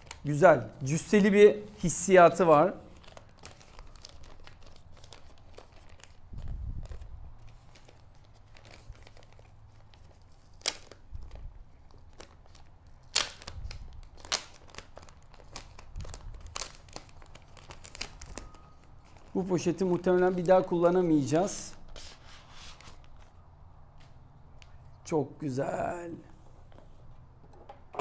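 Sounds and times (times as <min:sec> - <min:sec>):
plastic bag crinkling and tearing: 0:00.0 - 0:00.4, 0:02.8 - 0:21.9.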